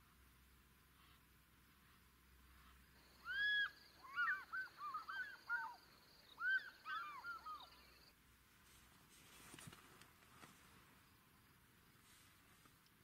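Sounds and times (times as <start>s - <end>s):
bird calling: 1.9s - 8.1s.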